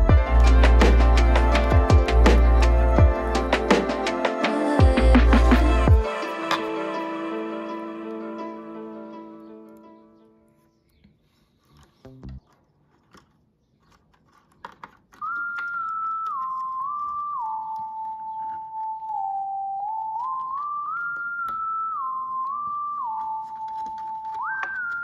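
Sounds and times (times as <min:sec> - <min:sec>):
high melody background music: 0:00.0 - 0:10.6.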